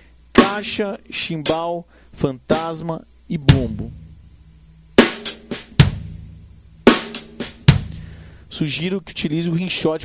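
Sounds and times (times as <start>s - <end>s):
hi-hat: 0.0s - 9.8s
bass drum: 3.4s - 8.2s
accented snare hit: 3.5s - 8.2s.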